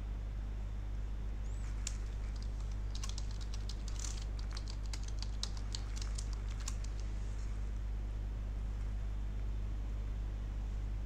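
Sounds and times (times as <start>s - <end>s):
steady low hum: 0.0s - 11.0s
keyboard typing clicks: 1.7s - 7.1s.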